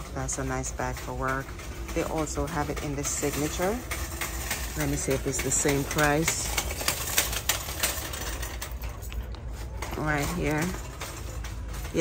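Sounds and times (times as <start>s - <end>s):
bag hardware clicks and rustles: 0.0s - 12.0s.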